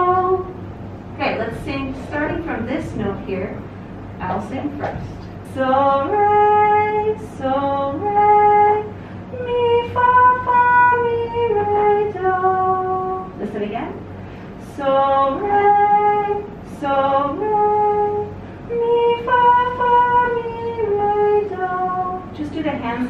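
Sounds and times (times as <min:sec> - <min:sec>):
woman singing unaccompanied: 0:00.0 - 0:00.6, 0:05.3 - 0:23.0
singer breathing: 0:08.9 - 0:09.3, 0:14.1 - 0:14.6.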